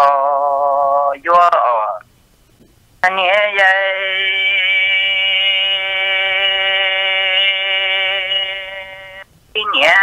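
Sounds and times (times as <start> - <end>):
person singing a long held note: 3.4 - 9.9.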